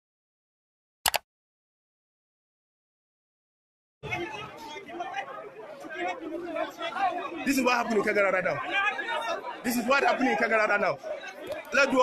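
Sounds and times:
people talking over each other: 4.0 - 12.0.

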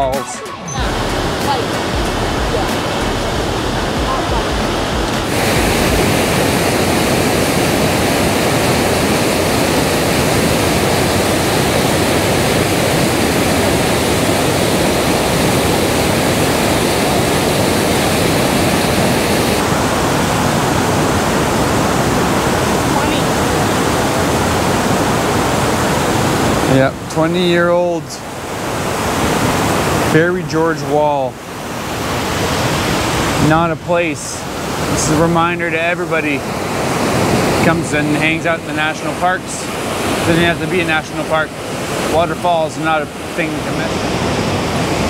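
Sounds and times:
waterfall rushing: 0.0 - 45.0.

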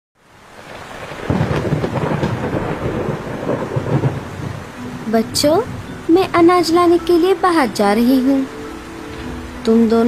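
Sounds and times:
heavy rain: 0.2 - 10.0
rolling thunder: 0.5 - 6.9.

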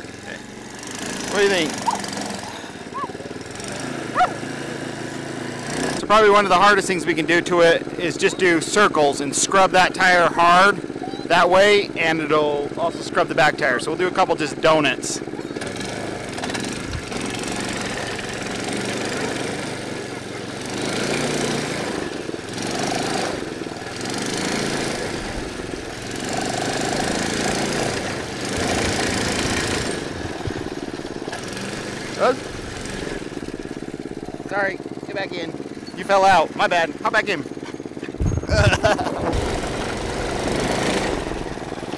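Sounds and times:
go-kart engine revving: 0.0 - 41.9.

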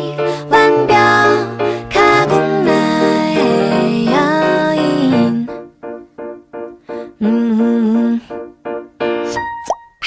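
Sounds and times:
woman singing pop song: 0.0 - 5.6.

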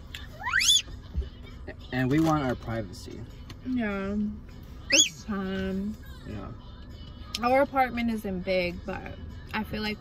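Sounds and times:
high rising squeak: 4.9 - 5.3.

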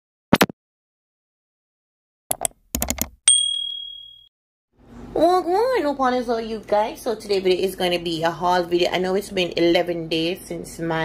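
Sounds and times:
bright bell ding: 3.3 - 4.3.

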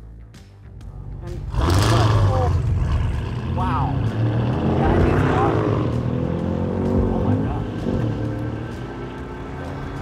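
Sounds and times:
car engine pulling hard: 1.3 - 10.0.

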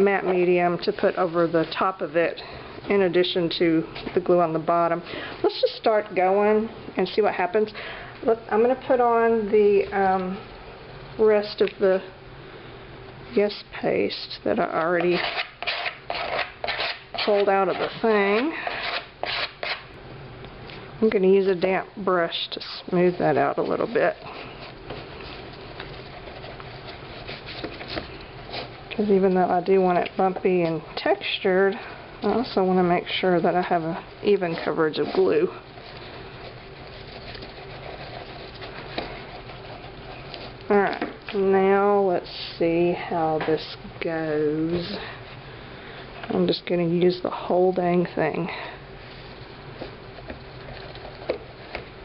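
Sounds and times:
soft paintbrush strokes: 22.6 - 29.6, 31.8 - 40.7.

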